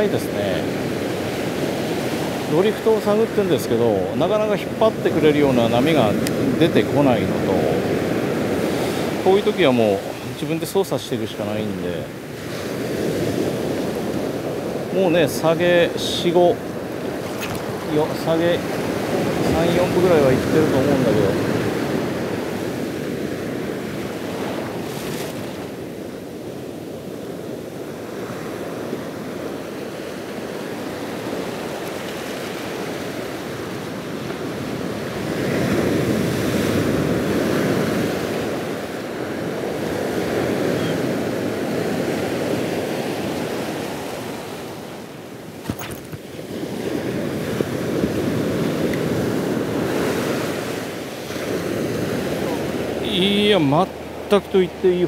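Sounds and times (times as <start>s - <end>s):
small waves breaking on sand: 0.0s - 55.0s.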